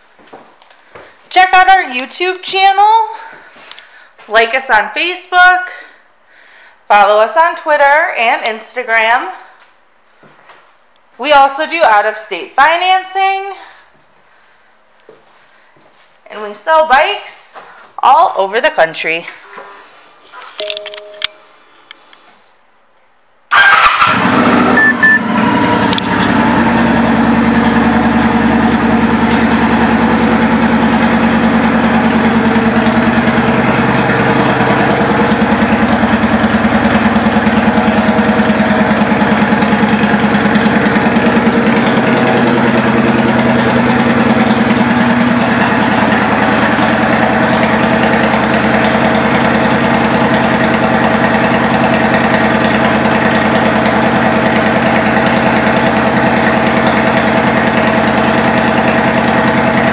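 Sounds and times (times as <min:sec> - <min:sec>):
motorcycle engine idling: 0:25.2 - 0:59.9.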